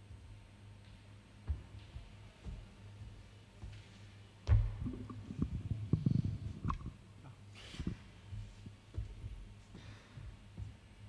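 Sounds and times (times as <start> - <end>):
steady low hum: 0.0 - 11.0
faint low thumps: 4.4 - 6.9.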